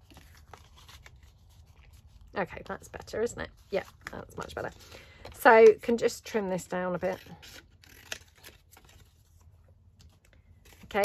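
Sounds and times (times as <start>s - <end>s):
paper rustling: 0.0s - 3.0s, 7.5s - 11.0s.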